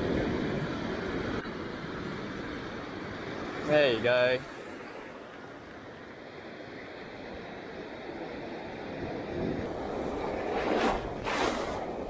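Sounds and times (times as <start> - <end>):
surf washing over sand: 8.9 - 12.0
wind noise on microphone: 8.9 - 12.0.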